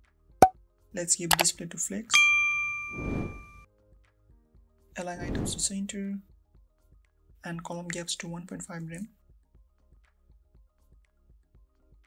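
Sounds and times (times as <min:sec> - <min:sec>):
bright bell ding: 0:02.2 - 0:03.6.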